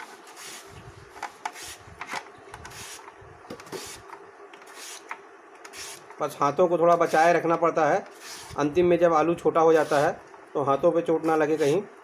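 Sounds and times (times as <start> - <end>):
potato scraping on slicer blade: 5.7 - 6.0, 8.1 - 8.7, 9.8 - 10.1.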